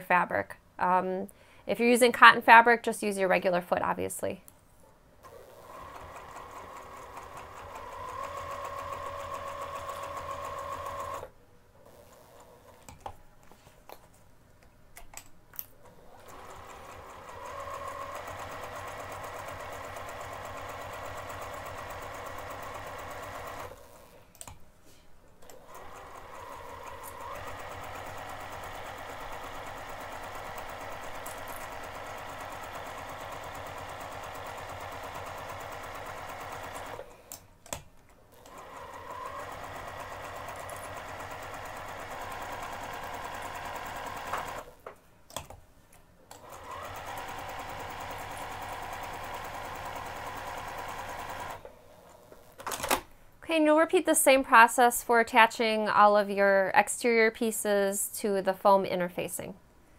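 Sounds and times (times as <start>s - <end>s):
electric sewing machine stitching: 5.2s - 12.9s, 15.8s - 24.3s, 25.4s - 37.2s, 38.3s - 44.8s, 46.4s - 52.6s.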